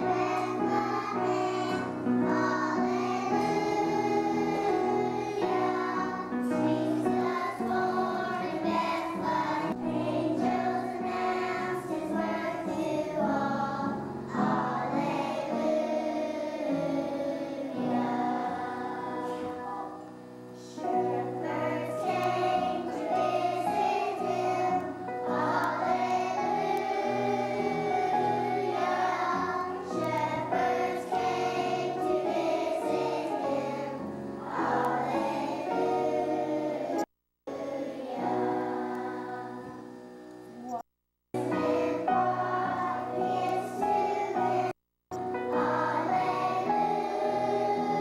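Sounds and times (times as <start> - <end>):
children's choir singing: 0.0 - 20.0, 20.6 - 39.9, 41.4 - 48.0.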